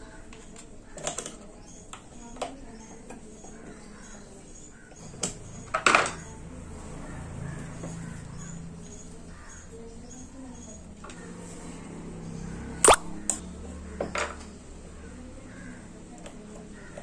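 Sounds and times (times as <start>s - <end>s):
harsh loud sound: 12.8s - 13.4s.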